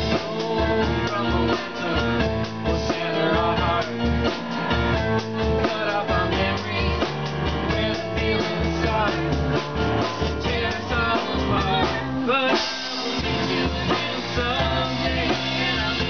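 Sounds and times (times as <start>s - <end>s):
bass: 0.0s - 16.0s
drum kit: 0.0s - 16.0s
guitar: 0.0s - 16.0s
keyboard: 0.0s - 16.0s.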